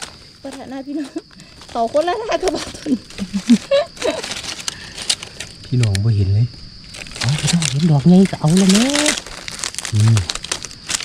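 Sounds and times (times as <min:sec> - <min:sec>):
dry leaves crackling and rustling: 0:00.0 - 0:05.8, 0:06.8 - 0:11.0
short low voice sound: 0:10.0 - 0:10.3.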